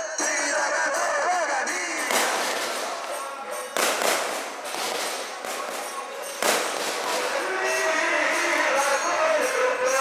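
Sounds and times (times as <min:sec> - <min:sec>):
fireworks bangs with rumble: 0:02.0 - 0:07.5.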